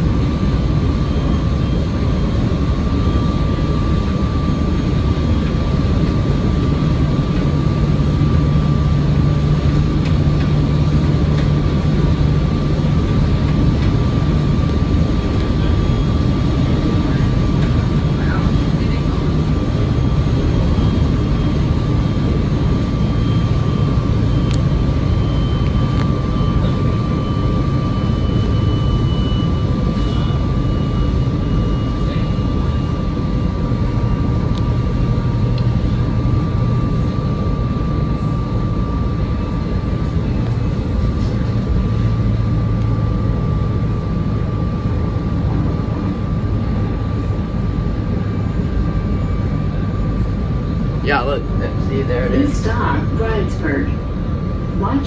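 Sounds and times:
high-pitched whine: 0.0 - 55.0.

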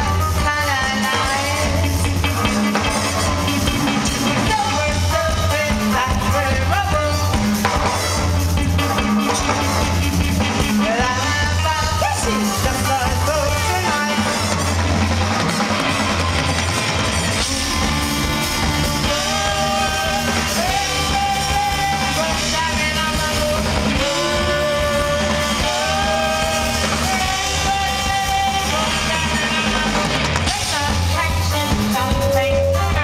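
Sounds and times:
live rock band playing: 0.0 - 33.0.

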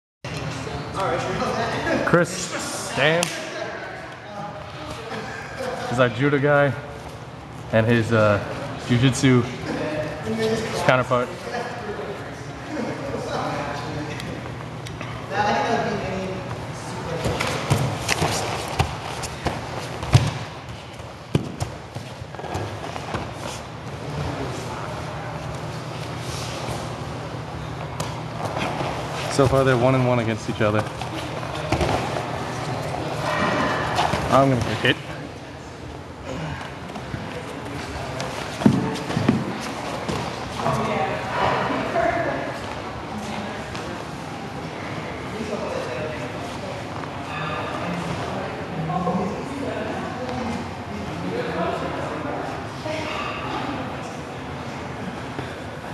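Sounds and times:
bodies and feet shuffling on mats: 17.2 - 30.0, 36.6 - 40.9.

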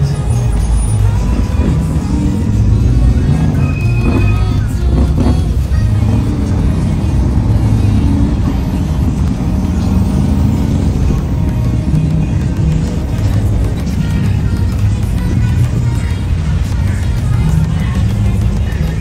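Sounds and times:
car engines rumbling: 0.0 - 19.0
music playing: 0.0 - 19.0.

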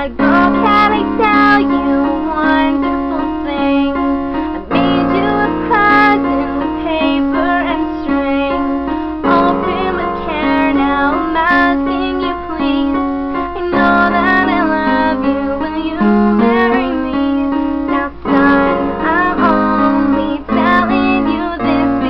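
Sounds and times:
piano chords: 0.0 - 22.0
woman singing: 0.0 - 22.0.

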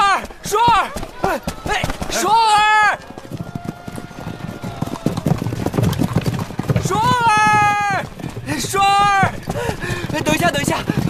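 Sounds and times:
horse hooves clopping: 0.0 - 11.0.

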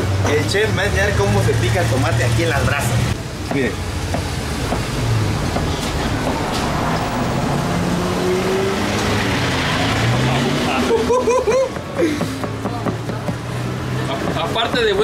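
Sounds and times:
street noise: 0.0 - 15.0
vehicle engine passing: 0.0 - 15.0
man laughing: 10.7 - 12.4.

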